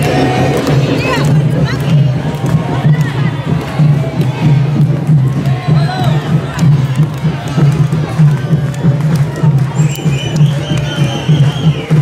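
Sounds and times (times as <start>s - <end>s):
crowd shouting and cheering: 0.0s - 12.0s
drums playing driving beat: 0.0s - 12.0s.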